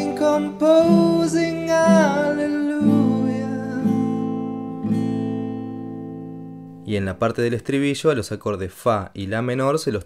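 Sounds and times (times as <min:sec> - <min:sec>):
acoustic guitar strums: 0:00.0 - 0:06.9.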